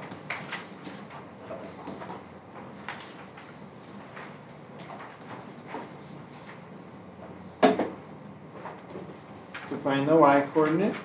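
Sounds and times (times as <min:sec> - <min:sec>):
stylus tapping on touchscreen: 0:00.0 - 0:06.5.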